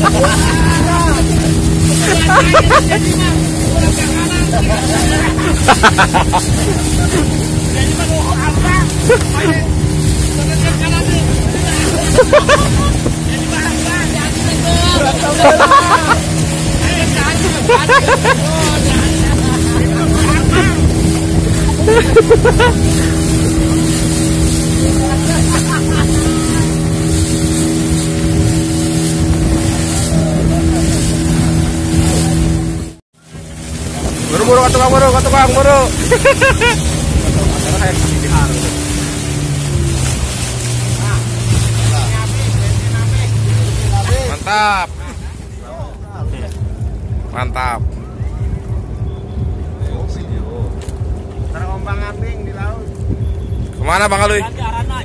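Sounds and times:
people shouting and laughing: 0.0s - 23.8s, 24.7s - 27.1s, 35.2s - 38.4s
boat motor running: 0.0s - 55.0s
water rushing past hull: 0.0s - 55.0s.

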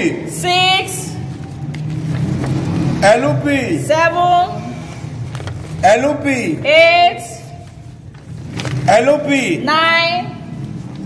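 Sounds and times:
paper sheets rustling: 1.2s - 3.0s, 5.2s - 6.1s, 7.4s - 9.3s.

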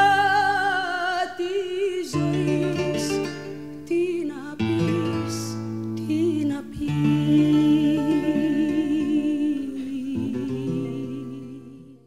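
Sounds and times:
acoustic guitar chords: 0.0s - 12.0s
person singing with vibrato: 0.0s - 12.0s.

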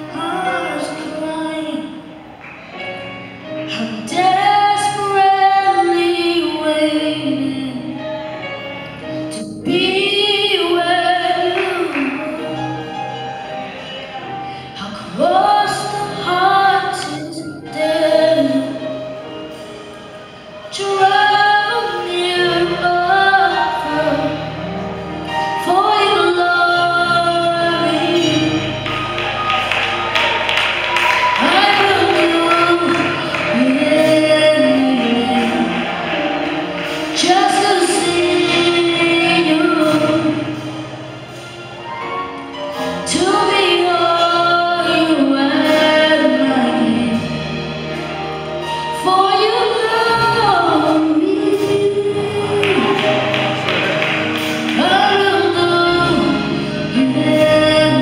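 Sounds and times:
musical accompaniment: 0.0s - 58.0s.

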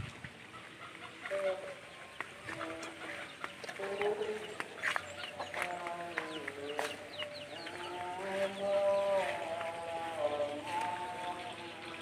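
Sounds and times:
chickens clucking: 0.4s - 12.0s.

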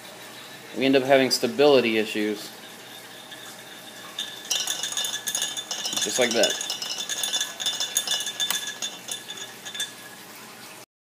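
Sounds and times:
stir bar rattling against glass: 2.1s - 10.1s.

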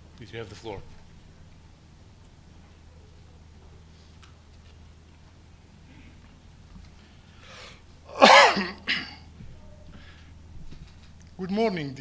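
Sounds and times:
man coughing: 8.1s - 9.3s.

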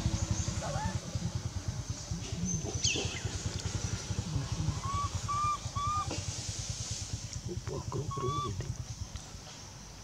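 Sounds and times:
high whistle-like animal calls: 4.8s - 6.1s, 8.1s - 8.6s.

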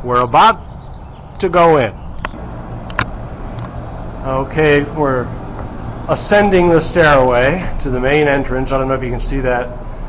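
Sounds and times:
short sharp clicks: 2.2s - 3.8s
low background rumble: 2.2s - 10.0s.

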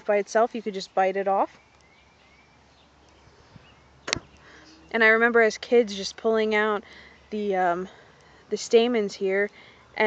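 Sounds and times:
sharp click: 4.1s - 4.3s.

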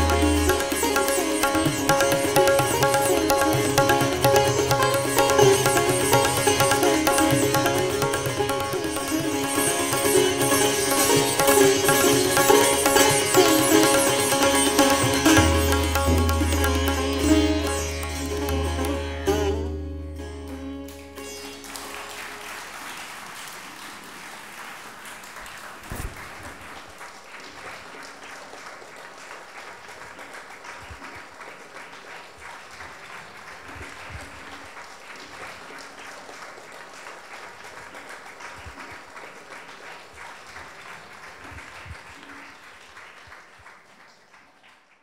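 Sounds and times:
audience applauding: 0.0s - 19.6s, 21.2s - 45.0s
sitar notes ringing: 0.0s - 22.6s.

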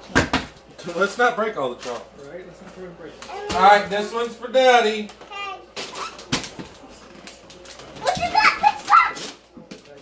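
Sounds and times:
wrapping paper rustling: 5.8s - 10.0s.

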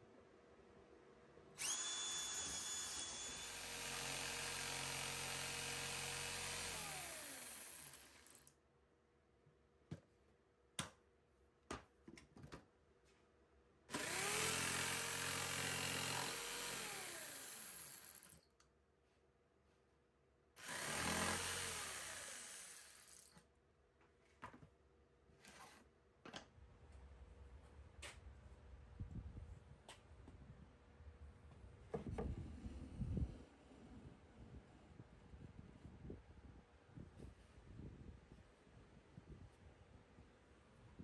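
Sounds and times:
cordless drill boring wood: 1.6s - 8.5s, 13.9s - 18.4s, 20.6s - 23.4s
jigsaw cutting wood: 1.6s - 8.5s, 13.9s - 18.4s, 20.6s - 23.4s.

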